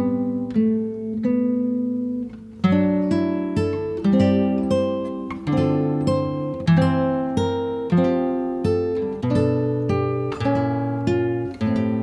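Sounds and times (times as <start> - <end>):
acoustic guitar strumming chords: 0.0 - 12.0.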